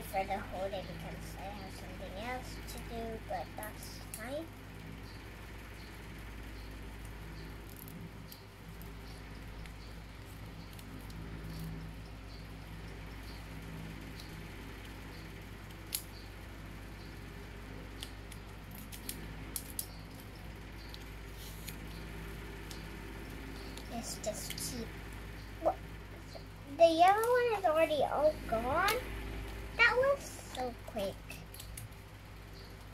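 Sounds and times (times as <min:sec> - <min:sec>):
low background hum: 0:00.0 - 0:32.9.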